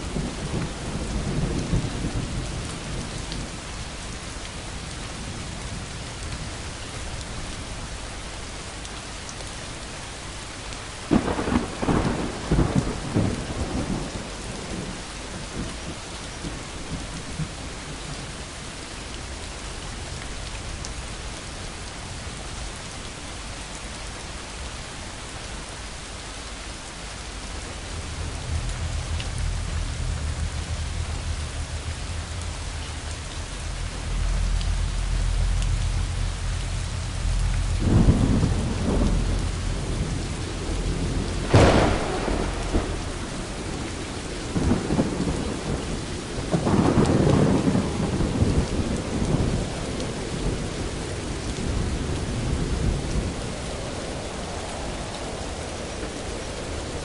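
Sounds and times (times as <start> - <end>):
thunder rumbling: 0.0 - 7.4, 11.0 - 20.4, 27.2 - 57.0
steady rain: 0.0 - 57.0
sharp thunder crack: 37.8 - 45.8.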